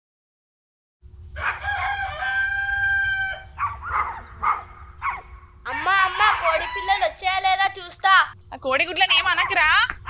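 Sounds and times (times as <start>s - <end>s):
rooster crowing: 1.4s - 7.4s.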